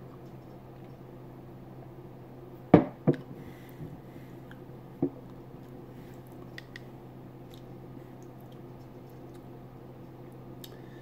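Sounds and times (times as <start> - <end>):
faint steady hum: 0.0 - 11.0
glass knocking on wooden table: 2.8 - 3.2.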